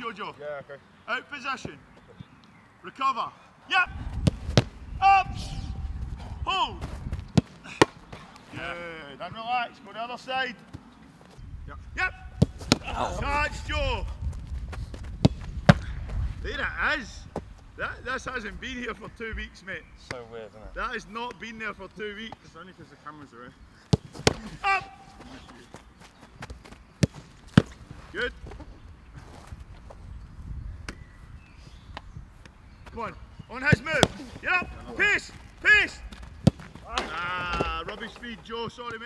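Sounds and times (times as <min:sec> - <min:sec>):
football being kicked: 0:04.0 - 0:04.8, 0:06.8 - 0:08.2, 0:12.3 - 0:13.1, 0:14.9 - 0:16.2, 0:23.9 - 0:25.8, 0:26.4 - 0:27.8, 0:36.1 - 0:37.9.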